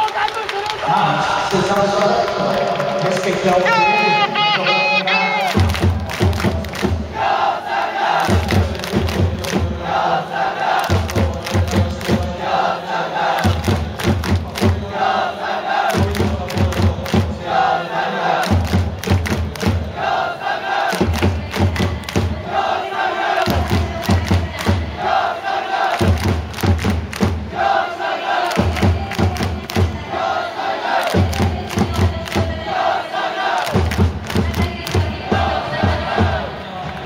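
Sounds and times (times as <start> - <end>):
crowd chanting in unison: 0.4 - 37.0
handclaps: 5.4 - 7.0, 8.2 - 9.6, 10.8 - 12.3, 13.4 - 14.8, 15.9 - 17.3, 18.4 - 19.8, 20.9 - 22.3, 23.4 - 24.8, 25.9 - 27.5, 28.4 - 30.0, 30.9 - 32.6, 33.6 - 35.1
bass drum beat: 5.5 - 7.2, 8.3 - 9.8, 10.9 - 12.4, 23.5 - 25.0, 28.6 - 30.1, 31.1 - 32.7, 33.7 - 36.5.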